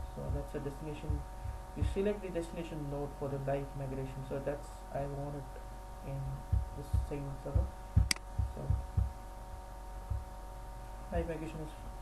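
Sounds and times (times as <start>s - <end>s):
soft dull low thumps: 0.0s - 2.2s, 6.2s - 11.4s
electrical hum: 0.0s - 12.0s.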